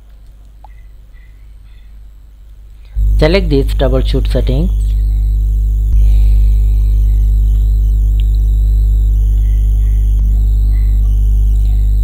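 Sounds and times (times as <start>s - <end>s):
loud low hum: 2.9s - 12.0s.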